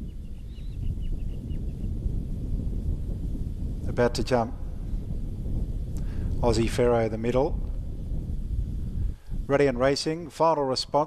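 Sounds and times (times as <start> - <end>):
wind rumble on microphone: 0.0 - 11.0
faint high bird chirps: 0.1 - 1.7.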